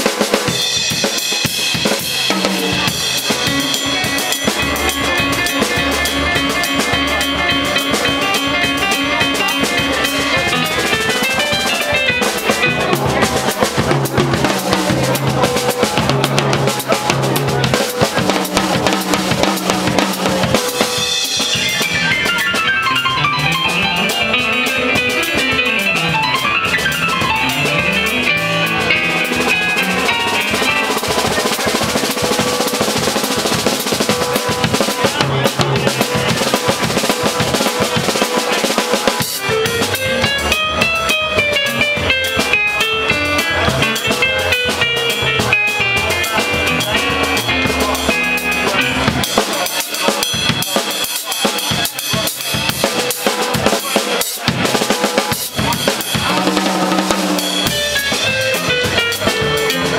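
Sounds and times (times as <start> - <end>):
drum kit: 0.0 - 59.9
electronic keyboard: 0.1 - 59.9
bass line: 0.6 - 38.6, 39.4 - 49.4, 55.6 - 59.9.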